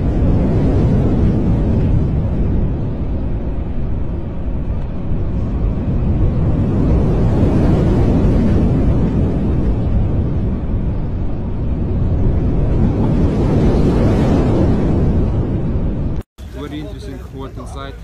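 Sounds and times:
rough sea churning: 0.0s - 18.0s
storm wind roaring on microphone: 0.0s - 18.0s.

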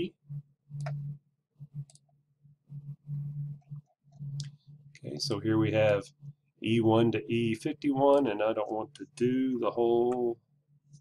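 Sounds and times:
computer mouse clicks: 0.7s - 1.1s, 1.8s - 2.2s.

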